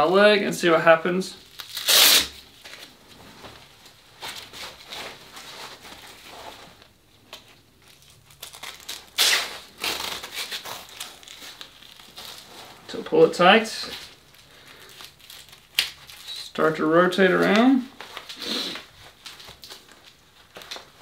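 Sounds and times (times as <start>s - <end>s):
nylon strap rustling and scraping: 1.5s - 16.6s.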